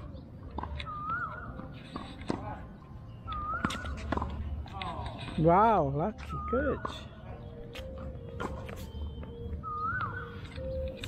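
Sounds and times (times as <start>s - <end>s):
tennis ball bouncing on hard court: 0.5s - 0.8s, 3.5s - 4.6s.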